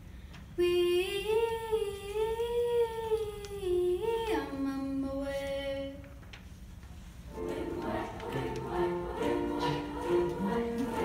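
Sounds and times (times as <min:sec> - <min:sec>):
children's choir singing: 0:07.3 - 0:11.0.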